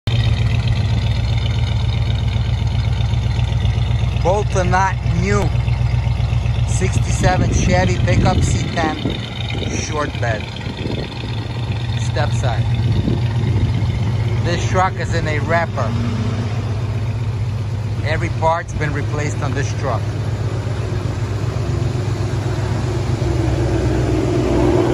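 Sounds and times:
pickup engine idling: 0.0 - 24.9.

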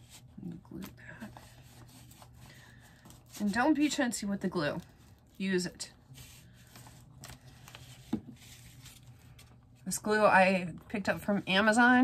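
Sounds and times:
paper rustling: 4.6 - 9.6.

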